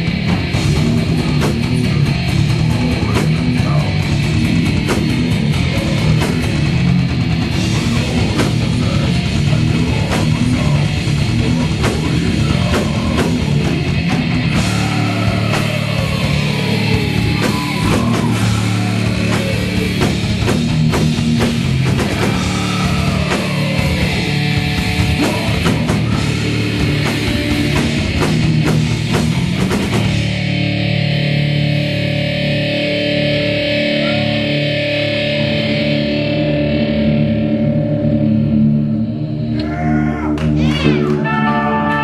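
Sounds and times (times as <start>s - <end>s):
drum and cymbal hits: 0.0s - 30.7s
distorted electric guitar chord: 0.0s - 39.5s
guitar feedback tones: 0.0s - 42.0s
metal band playing live: 0.0s - 42.0s.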